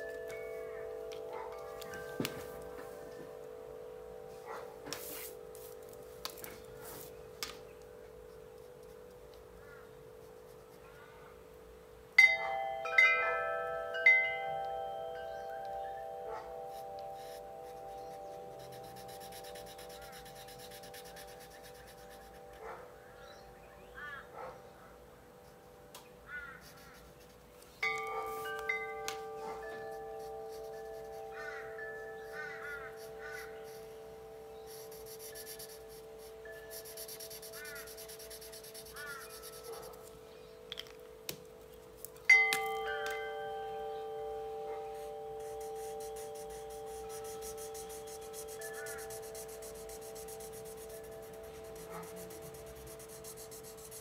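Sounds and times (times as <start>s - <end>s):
chimes ringing: 0.0s - 10.1s, 11.9s - 20.1s, 27.7s - 54.0s.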